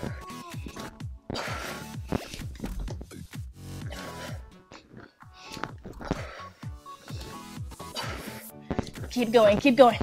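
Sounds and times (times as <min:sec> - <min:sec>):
electronic music with steady beat: 0:00.0 - 0:04.6, 0:05.6 - 0:10.0.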